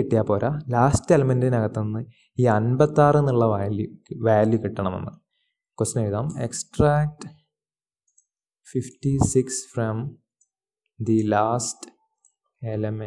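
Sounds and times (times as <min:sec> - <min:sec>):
man speaking: 0:00.0 - 0:05.2, 0:05.8 - 0:07.4, 0:08.7 - 0:10.2, 0:11.0 - 0:12.0, 0:12.6 - 0:13.0.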